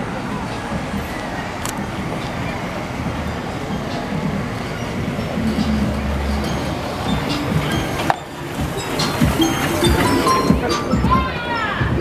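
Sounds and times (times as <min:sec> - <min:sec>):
vehicle rumble and road noise: 0:00.0 - 0:12.0.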